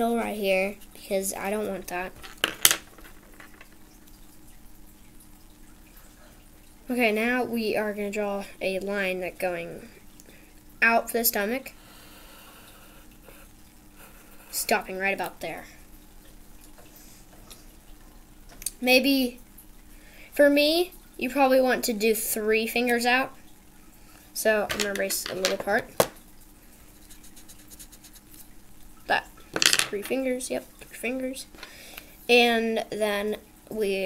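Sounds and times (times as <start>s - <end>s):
low steady hum: 0.0s - 34.0s.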